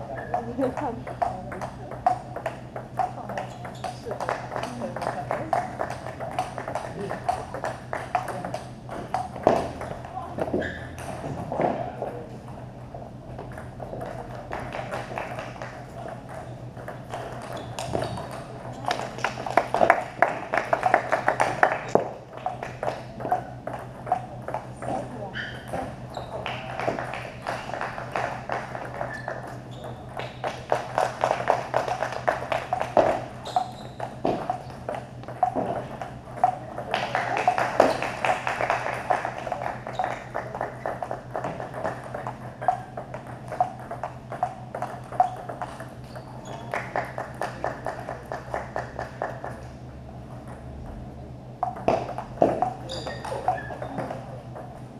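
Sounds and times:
steady low hum: 0.0 - 54.9
table tennis ball hits: 0.7 - 11.8, 13.4 - 49.6, 51.6 - 54.9.

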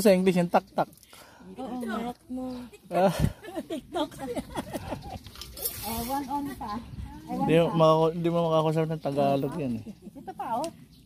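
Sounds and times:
people talking over one another: 5.8 - 10.7.

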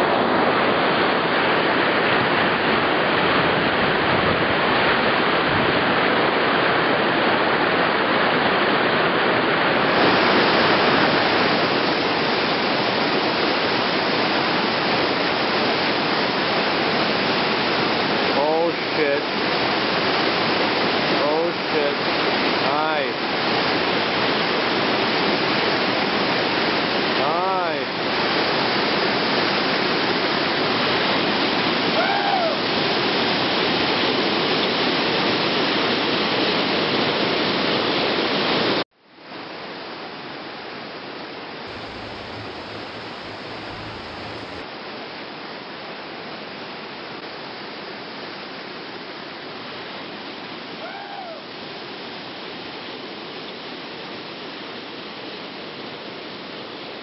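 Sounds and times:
rapids rushing over rocks: 41.7 - 44.6.

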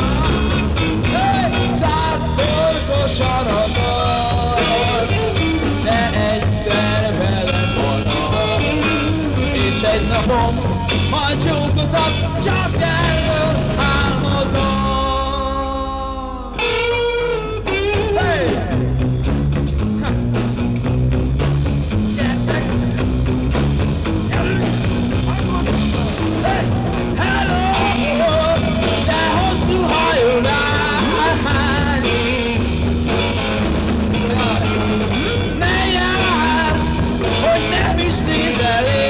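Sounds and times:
bass and drums beat: 0.0 - 15.9, 16.6 - 39.0
electric guitar notes bending: 0.0 - 39.0.

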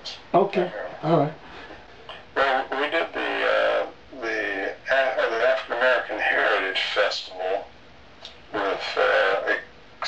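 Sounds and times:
man's voice over poor connection: 2.1 - 10.0.

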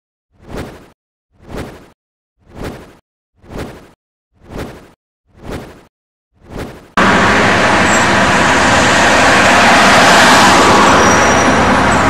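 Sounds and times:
road traffic rush: 6.4 - 12.0.

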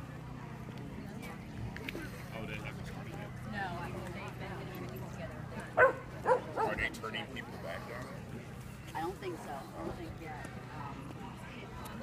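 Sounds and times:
crowd chatter: 0.0 - 12.0
dog barking: 5.8 - 6.8.

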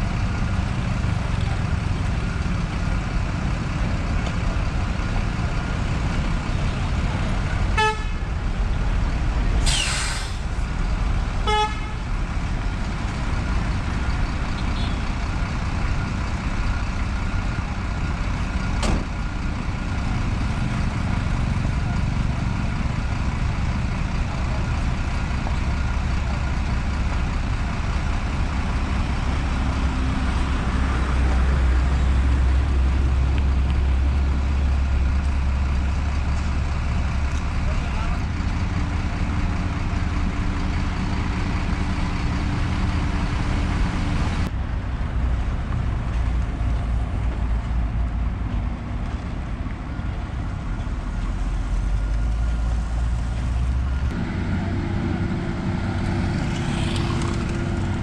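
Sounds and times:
heavy diesel engines rumbling: 0.0 - 58.0
short horn toot: 7.8 - 8.3, 11.5 - 12.0.

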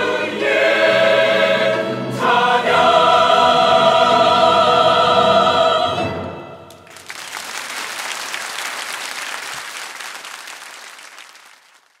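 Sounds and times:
choir with orchestra: 0.0 - 6.8
audience applauding: 6.7 - 12.0.

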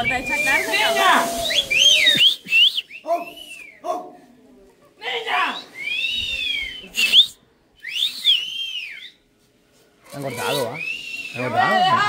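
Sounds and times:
person whistling: 0.0 - 3.8, 5.8 - 9.2, 10.4 - 11.5.

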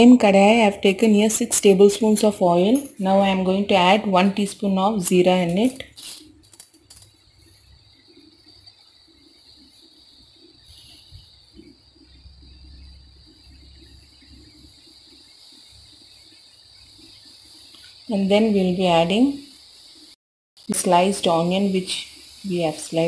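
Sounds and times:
seeds frying in oil: 0.0 - 23.0.

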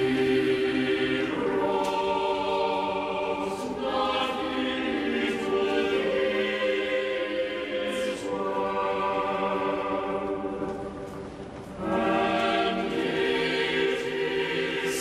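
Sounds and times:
choir singing slow chords: 0.0 - 15.0.

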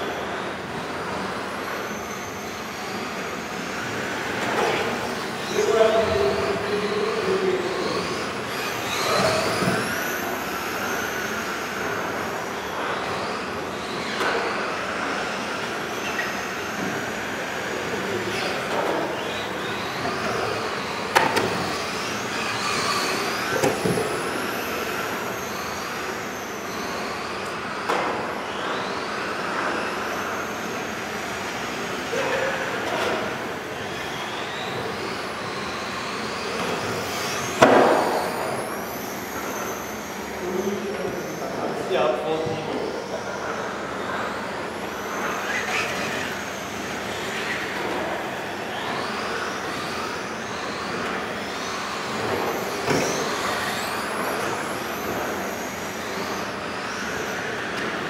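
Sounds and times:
rc car motors whining: 0.0 - 58.0.

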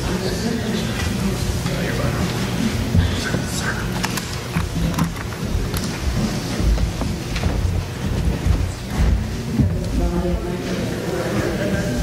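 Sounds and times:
footsteps on wooden floor: 0.9 - 12.0.

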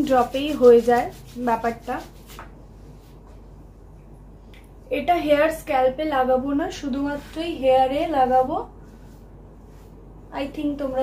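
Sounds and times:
woman speaking: 0.0 - 2.2, 4.9 - 8.8, 10.3 - 11.0
palms rubbing together: 0.0 - 3.4.

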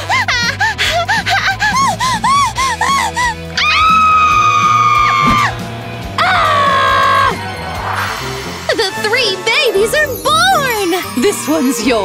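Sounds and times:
background music: 0.0 - 12.0
women screaming: 3.1 - 5.6, 6.2 - 7.4.

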